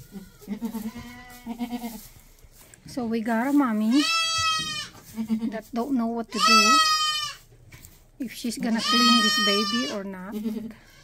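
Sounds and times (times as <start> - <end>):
goat bleating: 0.0 - 2.1, 3.9 - 5.6, 6.3 - 7.5, 8.6 - 11.0.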